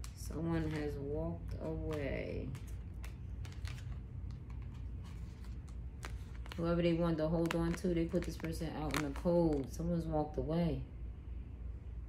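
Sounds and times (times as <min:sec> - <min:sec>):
low steady hum: 0:00.0 - 0:12.0
cards clicking and tapping: 0:01.6 - 0:06.6.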